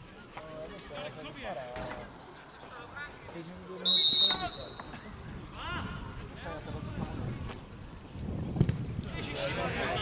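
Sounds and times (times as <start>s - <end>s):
faint voices: 0.0s - 8.2s
pea whistle blast: 3.8s - 4.9s.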